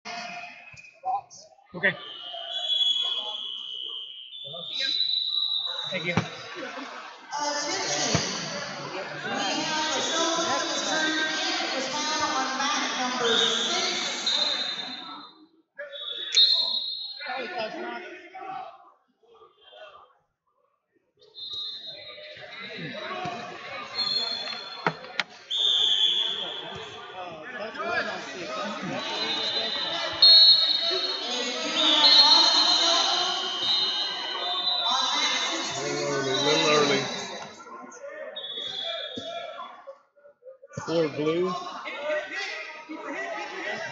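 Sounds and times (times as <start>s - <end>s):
voices echoing in a hall: 0.0s - 43.9s
referee whistle: 1.8s - 6.4s, 13.2s - 17.4s, 21.4s - 27.1s, 28.8s - 37.6s, 38.3s - 39.7s
faint voices: 26.3s - 43.9s.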